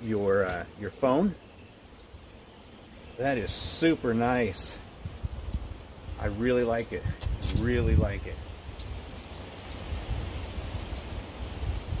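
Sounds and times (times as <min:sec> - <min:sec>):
steady hiss: 0:00.0 - 0:12.0
wind rumble on microphone: 0:04.5 - 0:12.0.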